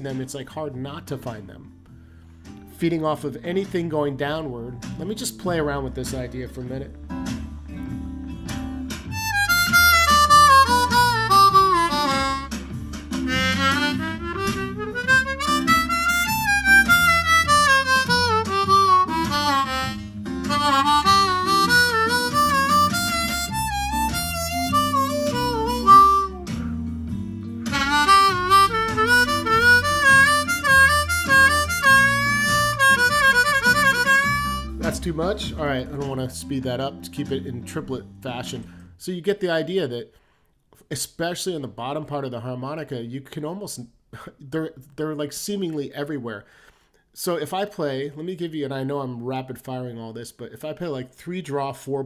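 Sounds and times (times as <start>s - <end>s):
blues harmonica: 7.8s - 36.4s.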